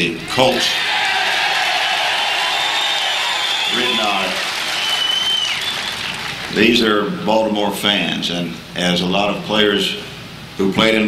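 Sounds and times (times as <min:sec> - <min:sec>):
crowd applauding: 0:00.7 - 0:07.0
whistle: 0:02.6 - 0:06.4.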